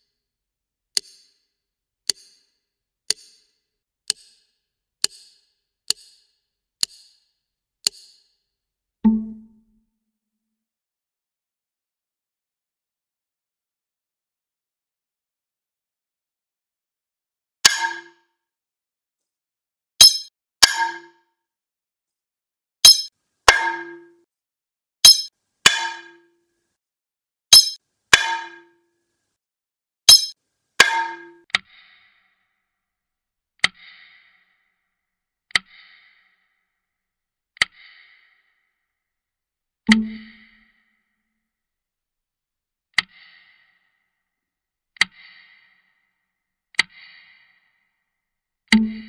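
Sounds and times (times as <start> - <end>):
metallic clangs with short ring: 20.0 - 21.0, 22.9 - 24.1, 25.1 - 26.1, 27.6 - 28.6, 30.1 - 31.4
light metallic pings: 22.8 - 24.2, 25.0 - 25.3, 27.6 - 27.8, 30.1 - 31.4, 39.9 - 40.6.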